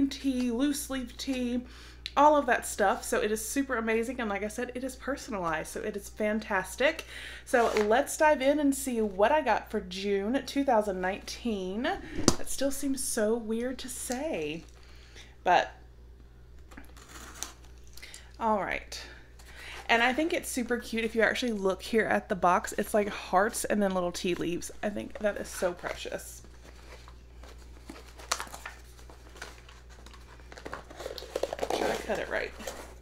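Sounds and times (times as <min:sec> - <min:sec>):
paper rustling: 0:25.2 - 0:33.0.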